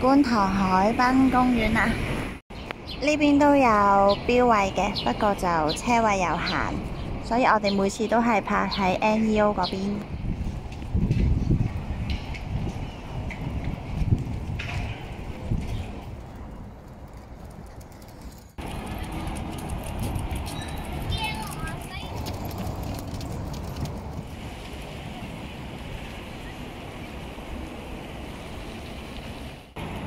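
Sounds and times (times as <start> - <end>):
voices of passersby: 3.0 - 28.6
wind rumbling on microphone: 3.8 - 30.0
water noise: 18.6 - 30.0.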